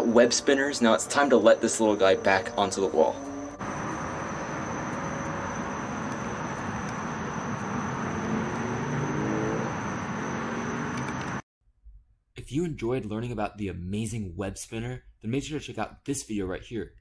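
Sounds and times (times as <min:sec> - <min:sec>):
thin high whine: 0:00.0 - 0:08.7.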